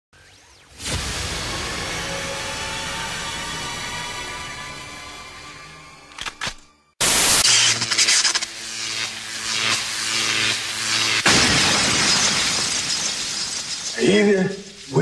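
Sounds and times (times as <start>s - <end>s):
loud crash: 0.7s - 3.3s, 11.2s - 15.0s
sharp hit: 11.1s - 15.0s.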